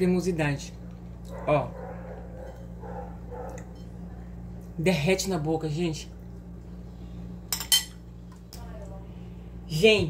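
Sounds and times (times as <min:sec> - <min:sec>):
fork and plate clinking: 0:07.5 - 0:08.0.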